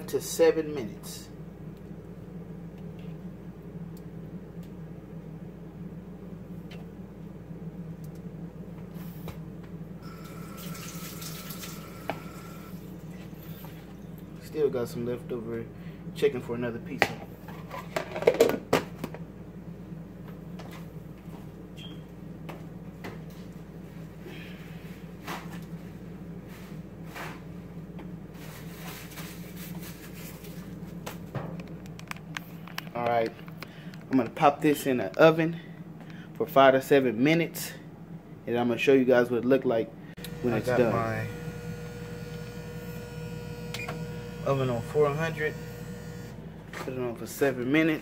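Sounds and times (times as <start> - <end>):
steady low hum: 0.0 - 48.0.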